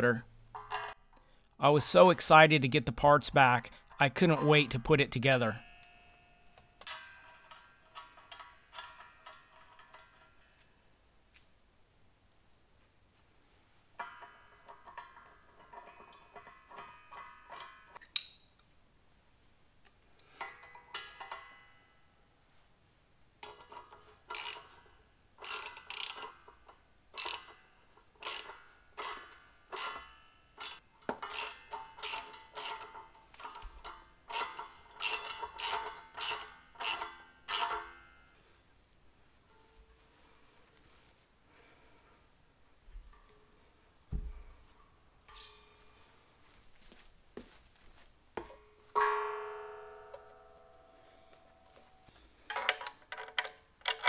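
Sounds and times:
tool clinking on steel: 0.5 - 1.3, 3.7 - 10.8, 14.0 - 18.6, 20.3 - 21.8, 23.4 - 38.2, 45.2 - 46.2
steel parts ringing: 3.8 - 10.9, 23.4 - 38.4, 45.3 - 46.1
ratchet clicking: 23.4 - 27.6, 28.2 - 38.0.

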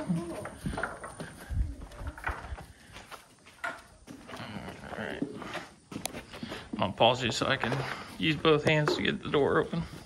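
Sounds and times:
footsteps on straw floor: 0.0 - 10.0.

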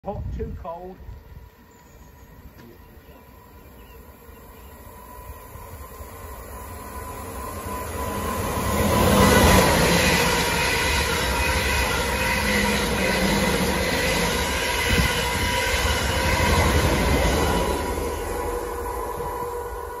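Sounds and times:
electric train passing at speed: 1.0 - 20.0.

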